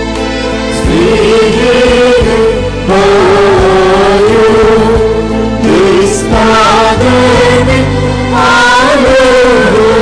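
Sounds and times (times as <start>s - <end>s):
choir singing liturgical chant: 0.8s - 10.0s.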